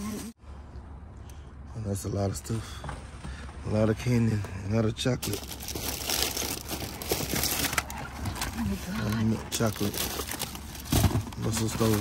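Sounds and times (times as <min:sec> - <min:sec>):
plastic wrappers crinkling: 0:05.2 - 0:12.0.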